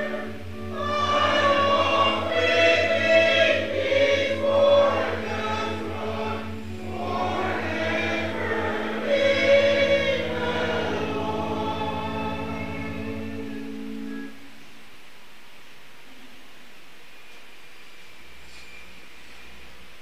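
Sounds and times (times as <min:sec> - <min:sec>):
congregation singing a hymn: 0:00.0 - 0:14.3
low sustained tone: 0:00.0 - 0:14.8.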